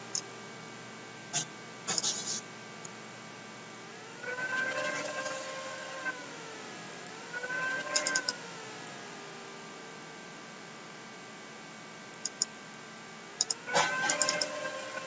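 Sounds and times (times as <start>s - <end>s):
faint steady whine: 0.0s - 15.0s
computer mouse clicks: 7.9s - 8.4s, 12.2s - 12.5s, 13.4s - 14.5s.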